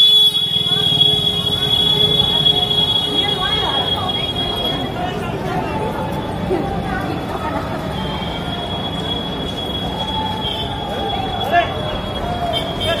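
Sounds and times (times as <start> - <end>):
indistinct voices of passers-by: 0.0 - 13.0
street noise: 0.0 - 13.0.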